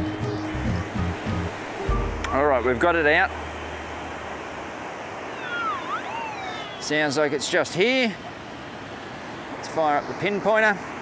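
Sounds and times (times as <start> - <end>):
surf noise: 0.0 - 11.0
metal detector warbling tone: 5.3 - 7.0.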